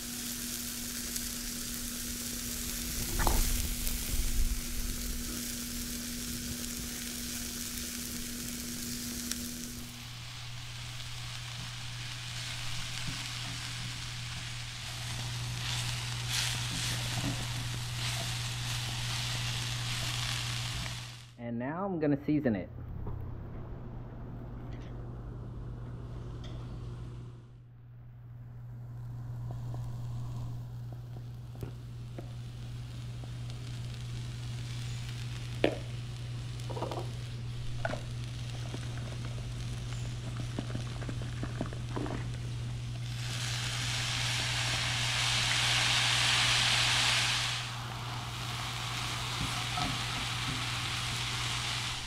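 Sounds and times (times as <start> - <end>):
food sizzling in a skillet: 0.0 - 21.4, 29.5 - 52.0.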